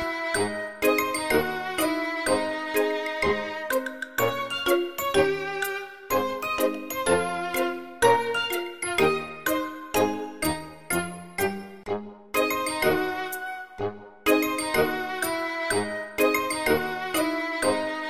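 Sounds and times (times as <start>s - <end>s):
bright chiming melody: 0.4s - 11.8s, 12.4s - 13.6s, 14.3s - 17.9s.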